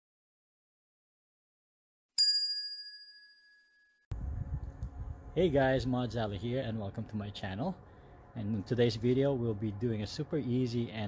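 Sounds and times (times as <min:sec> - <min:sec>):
bright bell-like ding: 0:02.2 - 0:03.9.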